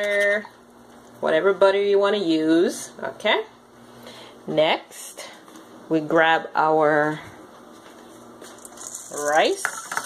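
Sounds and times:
peas simmering in saucepan: 8.6s - 10.0s.

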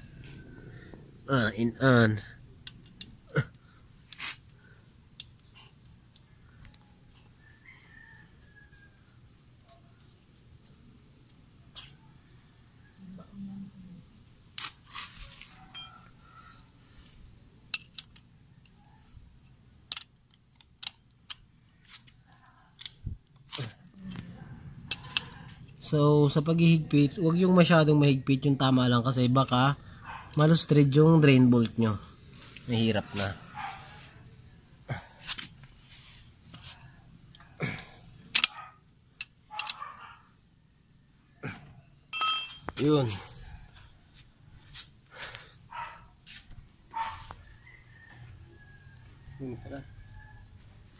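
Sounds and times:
metallic clicks and clinks: 17.7s - 18.8s, 19.4s - 22.2s, 24.9s - 25.9s, 38.3s - 40.2s.

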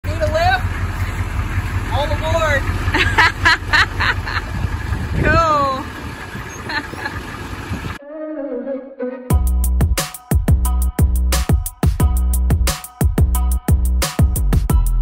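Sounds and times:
bus engine rumbling: 0.0s - 8.0s.

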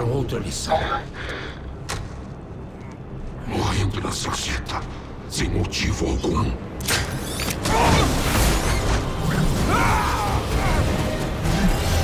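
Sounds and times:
metallic mechanical sound effects: 6.8s - 12.0s.

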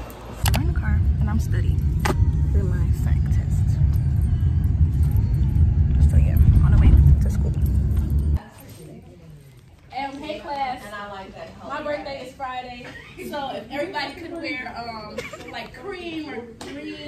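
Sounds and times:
car cabin road and engine rumble: 0.0s - 8.4s.

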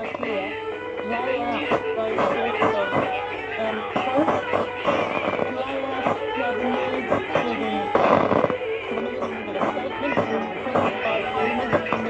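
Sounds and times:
radios playing music and talk: 0.0s - 12.0s.

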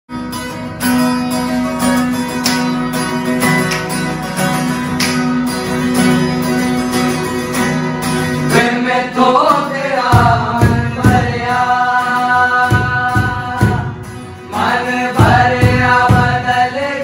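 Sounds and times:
acoustic guitar strumming: 0.1s - 17.0s.

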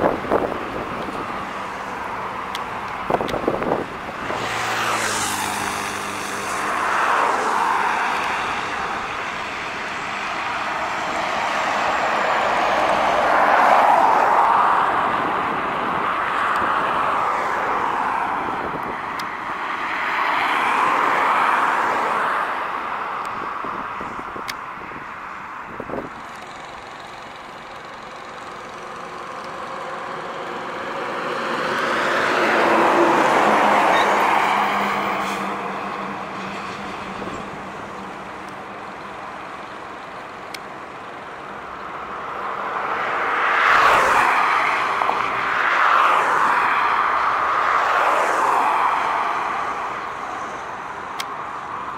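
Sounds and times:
diesel trucks passing on highway: 0.0s - 51.9s.

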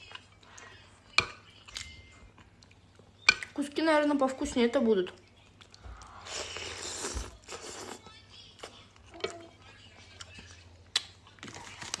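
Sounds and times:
person chewing: 5.4s - 9.1s
person slurping from spoon: 6.2s - 8.0s.

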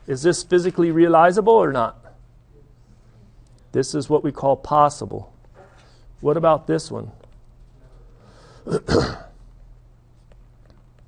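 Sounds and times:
man clearing his throat: 8.6s - 9.4s.

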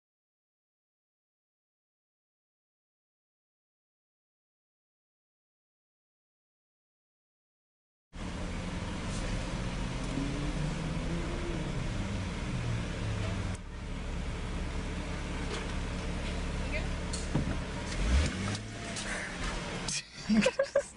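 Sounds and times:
car engine idling: 8.2s - 20.9s
low thump: 17.2s - 17.7s.

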